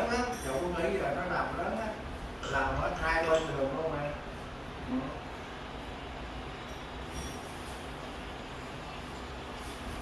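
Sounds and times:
steady hiss with low rumble: 0:00.0 - 0:10.0.

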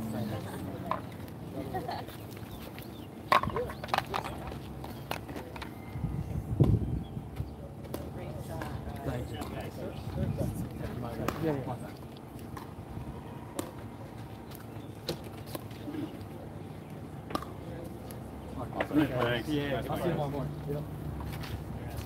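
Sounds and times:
people talking: 0:00.0 - 0:02.0, 0:07.4 - 0:12.0, 0:17.4 - 0:20.9.

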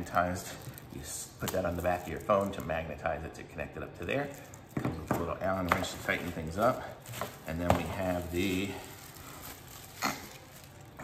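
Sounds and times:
plastic bag crinkling: 0:00.0 - 0:03.2, 0:04.1 - 0:11.0.

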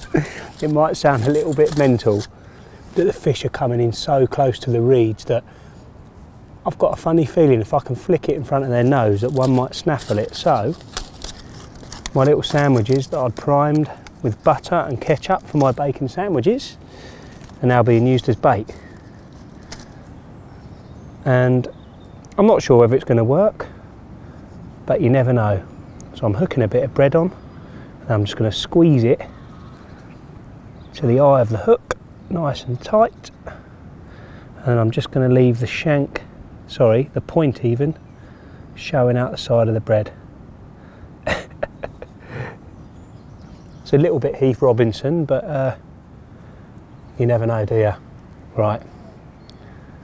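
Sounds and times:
soft breath: 0:05.4 - 0:06.0, 0:16.8 - 0:17.6, 0:33.4 - 0:34.6, 0:48.8 - 0:50.0.

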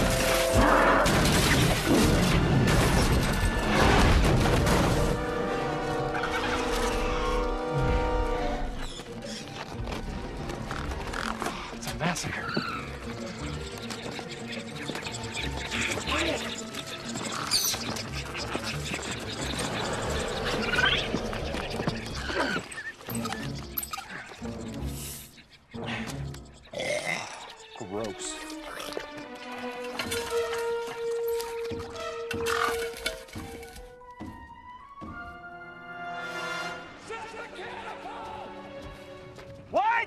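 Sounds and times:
dinosaurs shrieking and chittering: 0:00.0 - 0:04.2, 0:06.0 - 0:09.5, 0:10.6 - 0:29.3
orchestral film score: 0:00.0 - 0:40.0.

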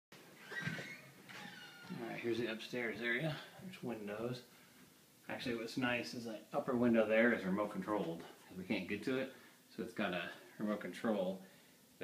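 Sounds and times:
faint high-pitched squeaks: 0:00.4 - 0:02.4.

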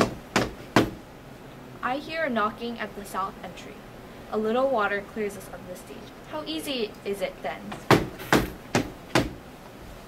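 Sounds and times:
knocking on a door: 0:00.0 - 0:01.0, 0:07.8 - 0:09.4.

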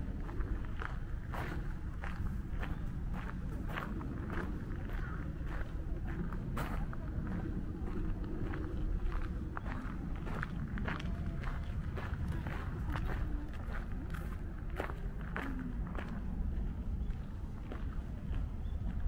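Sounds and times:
steady low rumble: 0:00.0 - 0:19.0
footsteps on gravel: 0:00.3 - 0:16.3.

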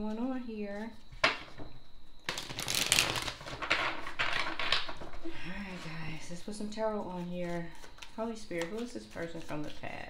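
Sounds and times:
cards being shuffled: 0:02.3 - 0:05.9, 0:07.0 - 0:10.0.

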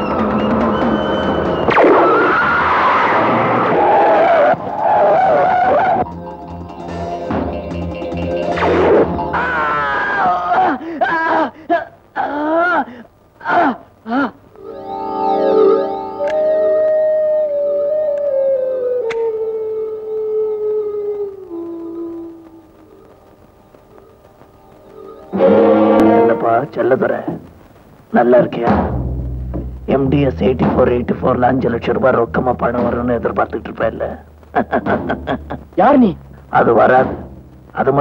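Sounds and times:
long electronic note sliding down: 0:14.6 - 0:18.1, 0:25.3 - 0:26.7.

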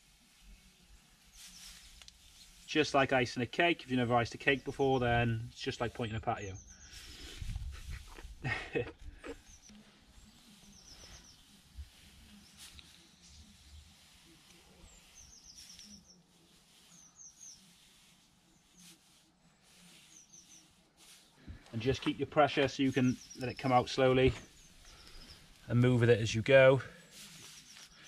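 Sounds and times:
man laughing: 0:08.4 - 0:09.4
small bird chirping: 0:09.2 - 0:19.0, 0:19.8 - 0:21.2, 0:22.9 - 0:25.8.

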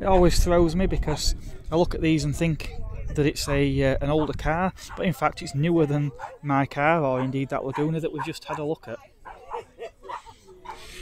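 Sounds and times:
faint voices: 0:00.1 - 0:11.0.

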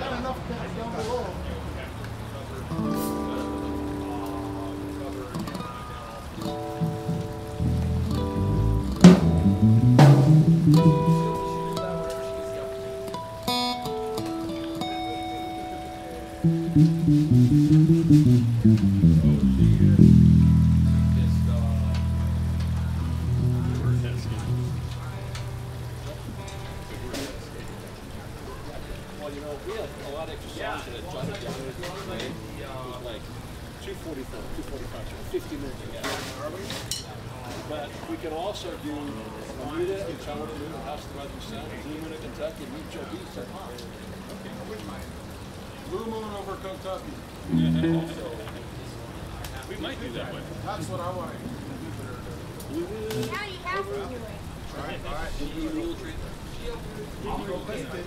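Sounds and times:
guitar notes and chords: 0:02.7 - 0:28.1, 0:31.5 - 0:33.3, 0:47.4 - 0:48.8
bass guitar notes: 0:06.4 - 0:13.9, 0:16.3 - 0:27.8, 0:32.0 - 0:32.8, 0:47.4 - 0:48.5.

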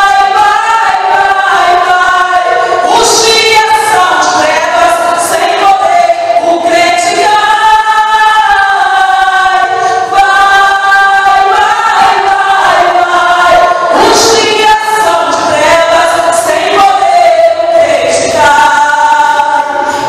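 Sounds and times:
voices singing long gliding notes: 0:00.0 - 0:20.0.

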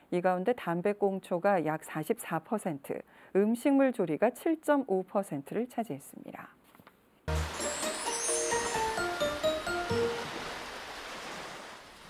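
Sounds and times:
advertising jingle: 0:07.3 - 0:10.4
rushing wash of water: 0:07.3 - 0:12.0.

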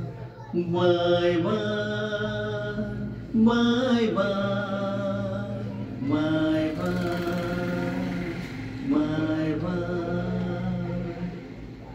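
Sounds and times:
man singing into microphone: 0:00.0 - 0:11.5.

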